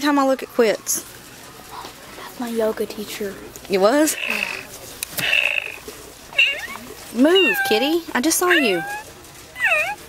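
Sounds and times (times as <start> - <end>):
electronic toy kitten meows: 6.4 - 6.8, 7.4 - 7.8, 8.5 - 9.0, 9.6 - 10.0.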